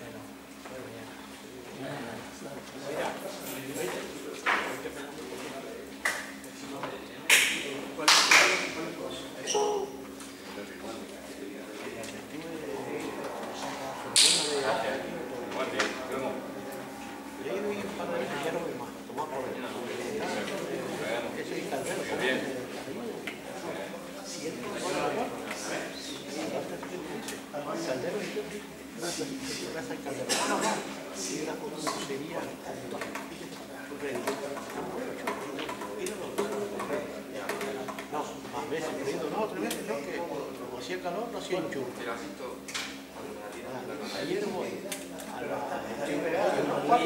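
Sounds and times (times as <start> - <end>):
indistinct voices in hall: 0.0 - 47.0
indistinct voices talking: 9.5 - 21.1.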